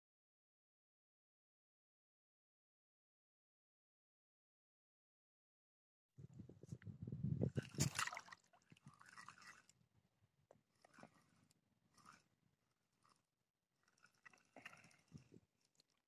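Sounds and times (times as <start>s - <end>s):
fabric rustling on microphone: 6.2s - 8.0s.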